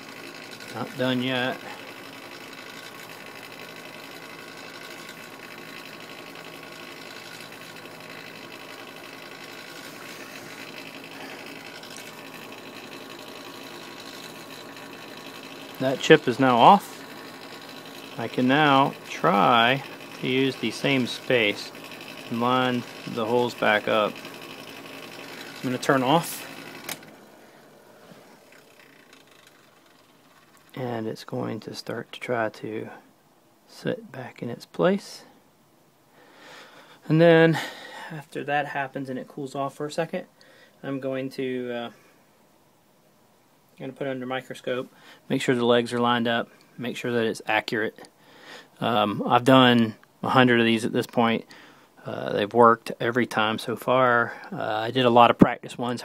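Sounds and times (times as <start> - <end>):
hot air blower whirring: 0.0 - 30.9.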